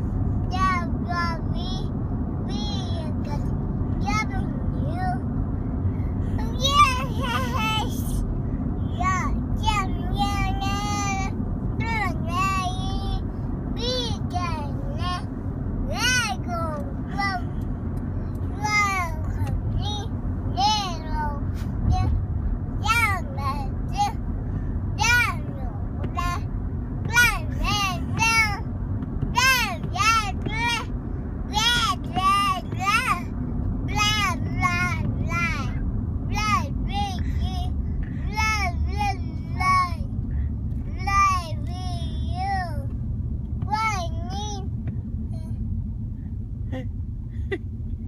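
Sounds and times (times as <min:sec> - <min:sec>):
car road noise hum: 0:00.0 - 0:48.0.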